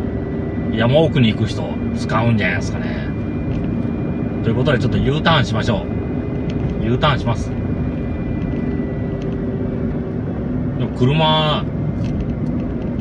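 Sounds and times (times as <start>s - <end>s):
car engine and tyre rumble: 0.0s - 13.0s.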